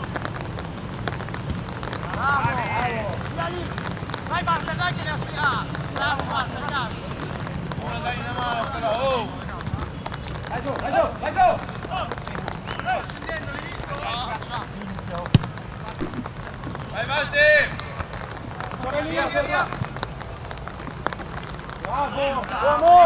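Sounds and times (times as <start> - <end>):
players calling and shouting: 1.5 - 23.0
ball being kicked thud: 15.3 - 16.4.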